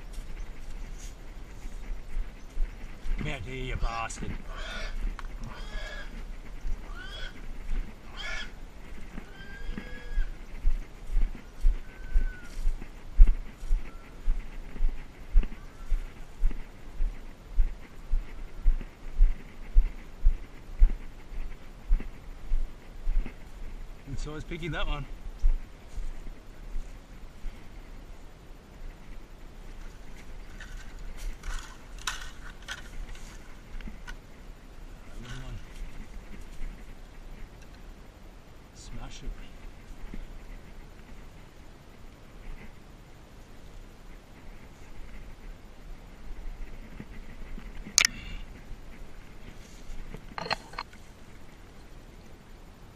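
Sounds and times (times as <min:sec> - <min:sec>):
footsteps on dry leaves: 0:00.0 - 0:23.8
high-pitched animal calls: 0:04.2 - 0:10.5, 0:11.5 - 0:12.7, 0:13.6 - 0:14.4.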